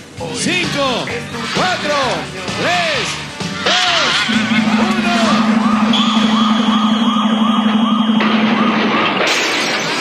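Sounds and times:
electronic siren wailing: 4.0 - 9.2
steady tone: 4.2 - 9.0
loud crashing noise: 4.3 - 10.0.

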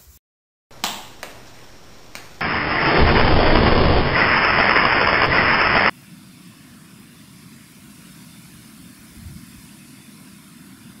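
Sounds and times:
fireball roar: 2.4 - 5.9.

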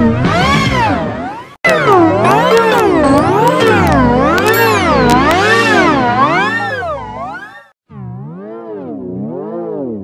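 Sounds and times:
warbling electronic jingle: 1.7 - 7.7.

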